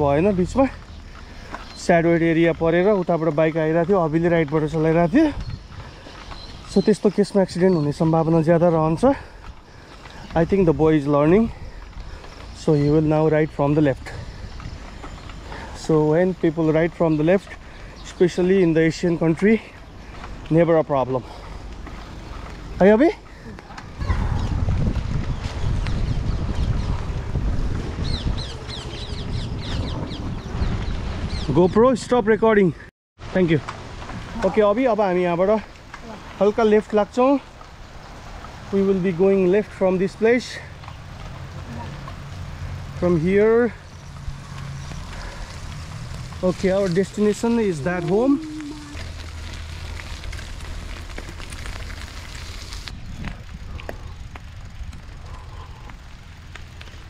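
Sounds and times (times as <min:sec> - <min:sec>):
bird chirping: 0:00.0 - 0:08.9, 0:28.0 - 0:31.8
wind buffeting microphone: 0:03.9 - 0:08.1, 0:08.8 - 0:18.8, 0:21.2 - 0:32.5, 0:40.8 - 0:57.0.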